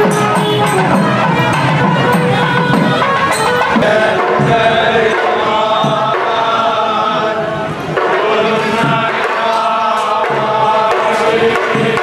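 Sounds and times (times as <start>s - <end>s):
group of men chanting in unison: 3.7s - 12.0s.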